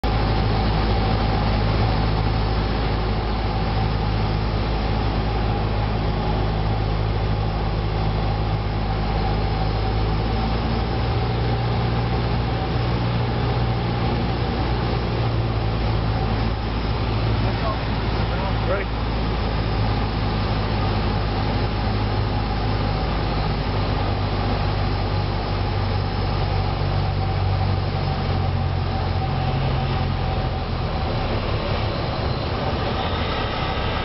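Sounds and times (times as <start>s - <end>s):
airflow noise over cabin: 0.0s - 34.0s
light aircraft engine and propeller: 0.0s - 34.0s.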